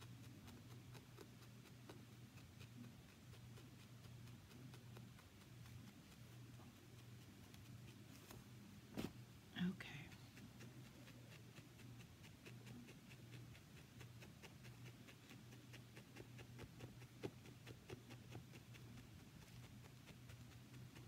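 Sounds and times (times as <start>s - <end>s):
felting needle ticks: 0.0s - 8.1s, 9.9s - 21.0s
low steady hum: 0.0s - 21.0s
whispered vocal sound: 9.5s - 10.4s.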